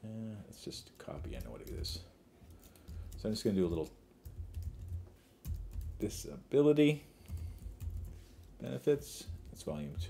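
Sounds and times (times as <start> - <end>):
typing on computer keyboard: 1.1 - 6.1, 7.2 - 8.5.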